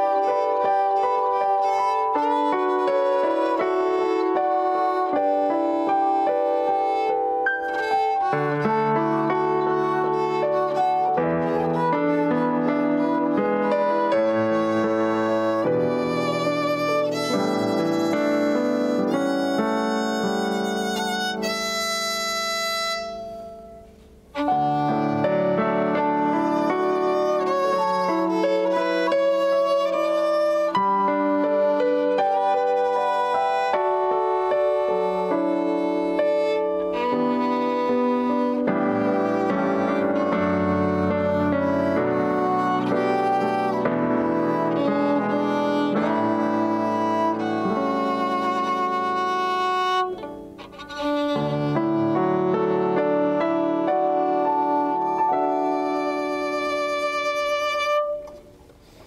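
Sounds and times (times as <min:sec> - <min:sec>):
electric keyboard accompaniment: 0:00.0 - 0:59.0
violin holding long note: 0:00.0 - 0:59.0.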